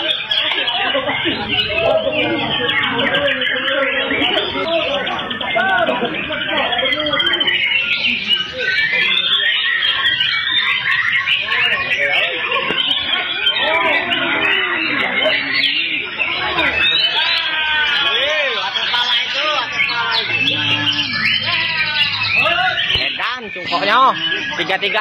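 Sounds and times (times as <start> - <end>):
songbirds singing chorus: 0.0 - 25.0.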